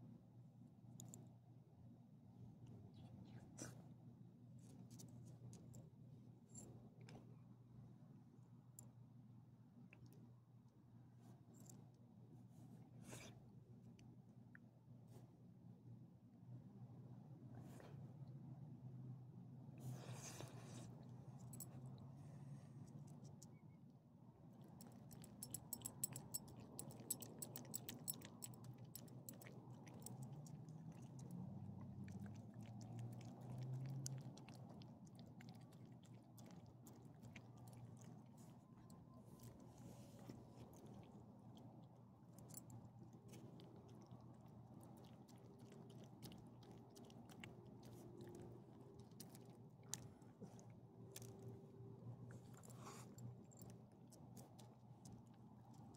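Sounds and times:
dog licking and chewing: 0:24.6 - 0:55.9.

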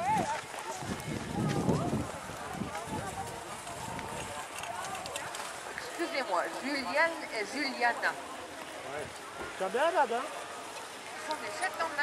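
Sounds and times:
muffled hoofbeats on snow: 0:00.0 - 0:12.0.

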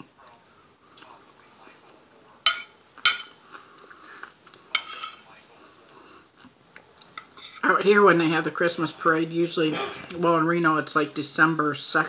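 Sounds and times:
fork clinking on plate: 0:02.5 - 0:03.4, 0:04.7 - 0:05.2.

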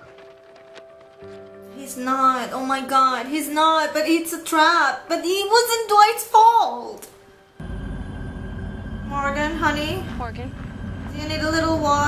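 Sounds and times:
low rumbling drone: 0:07.6 - 0:12.0.

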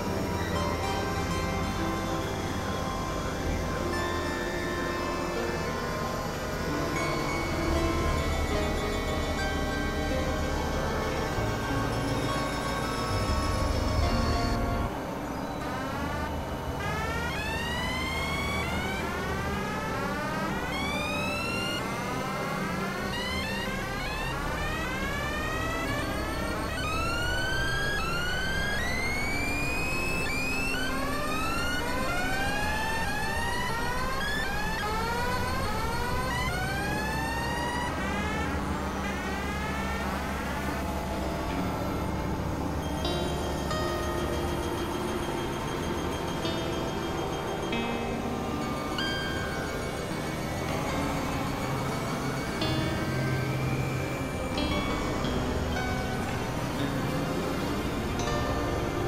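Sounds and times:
experimental synthesizer music: 0:00.0 - 0:59.0.

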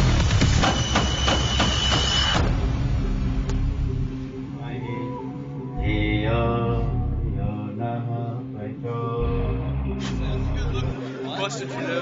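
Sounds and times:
soundtrack music: 0:00.0 - 0:12.0.

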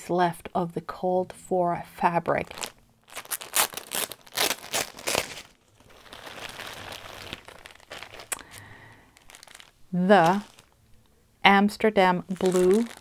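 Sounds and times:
plastic bag crinkling: 0:02.4 - 0:10.8, 0:12.2 - 0:13.0.

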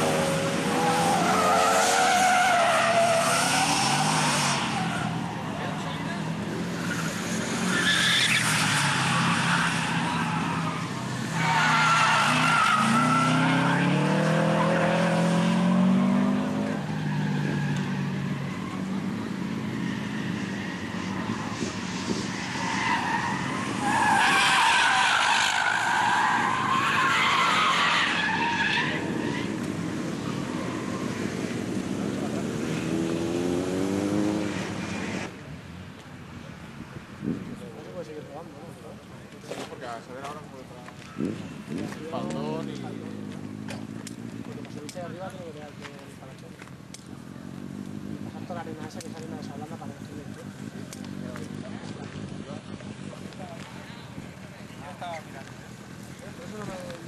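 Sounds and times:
car engines revving: 0:00.0 - 0:57.0
tyres squealing: 0:00.6 - 0:05.9, 0:06.7 - 0:15.2, 0:19.9 - 0:31.3.

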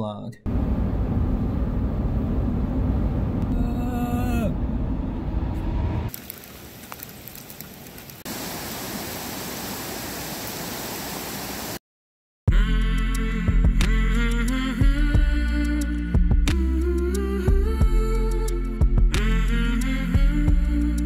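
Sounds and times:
car road noise inside cabin: 0:00.5 - 0:06.2
rain falling on pavement: 0:06.1 - 0:11.8.

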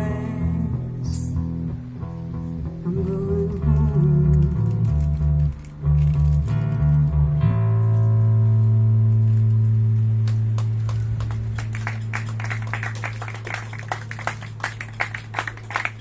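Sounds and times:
audience applause: 0:10.2 - 0:16.0.

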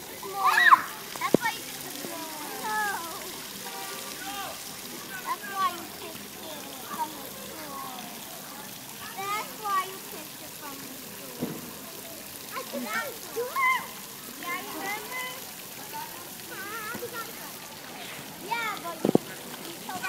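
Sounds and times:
children and adults talking: 0:00.0 - 0:20.0
fountain spraying water: 0:00.0 - 0:20.0.

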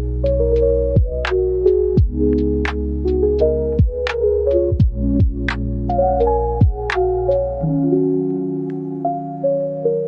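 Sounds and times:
soft keyboard chords: 0:00.0 - 0:10.0
kick drums: 0:01.0 - 0:01.2, 0:02.0 - 0:02.2, 0:03.8 - 0:04.1, 0:04.7 - 0:05.5, 0:06.6 - 0:07.0.

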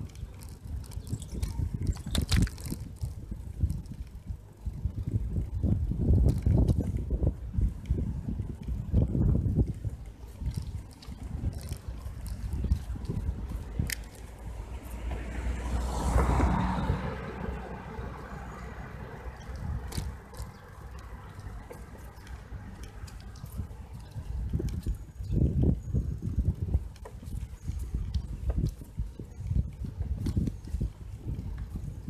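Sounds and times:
wind buffeting microphone: 0:00.0 - 0:32.0
car passing: 0:11.5 - 0:24.0.

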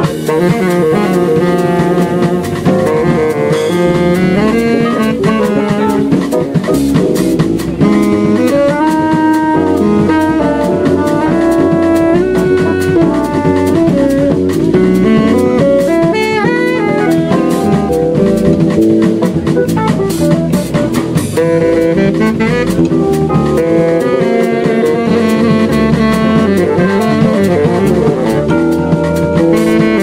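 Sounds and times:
drum kit with busy cymbals: 0:00.0 - 0:30.0
electric bass: 0:00.0 - 0:30.0
piano: 0:00.0 - 0:30.0
tenor saxophone melody: 0:00.0 - 0:30.0.

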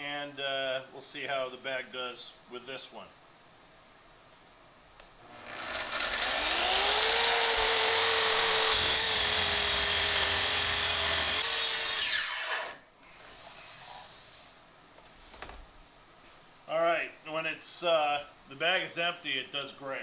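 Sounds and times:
track saw cutting wood: 0:05.2 - 0:12.8.

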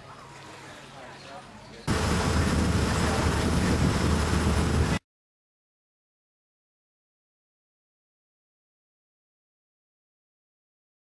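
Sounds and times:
deep engine rumble: 0:01.9 - 0:05.0
wind rushing: 0:01.9 - 0:05.0.

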